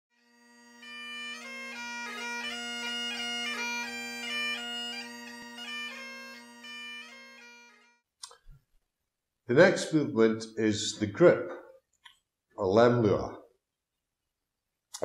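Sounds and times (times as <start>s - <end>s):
bagpipe melody over drones: 0.1s - 7.9s.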